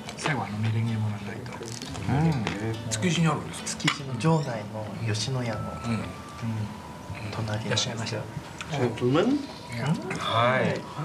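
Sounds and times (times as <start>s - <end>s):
men's voices: 0.2s - 11.0s.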